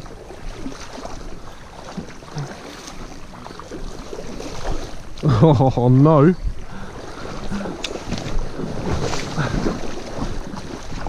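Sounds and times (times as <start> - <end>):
stream water rushing and splashing: 0.0 - 11.0
wind buffeting microphone: 3.7 - 11.0.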